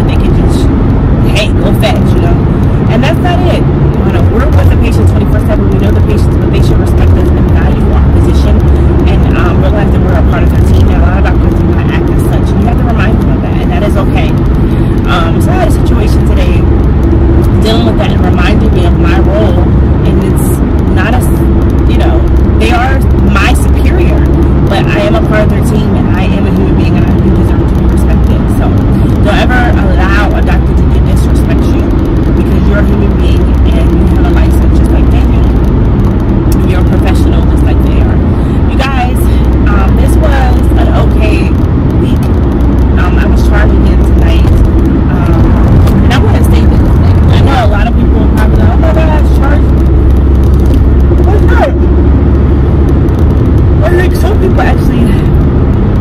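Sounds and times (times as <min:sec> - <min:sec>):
woman talking: 0:00.0 - 0:16.8, 0:17.4 - 0:35.7, 0:36.5 - 0:49.9, 0:50.7 - 0:52.0, 0:53.8 - 0:55.4
car road and engine rumble: 0:00.0 - 0:56.0.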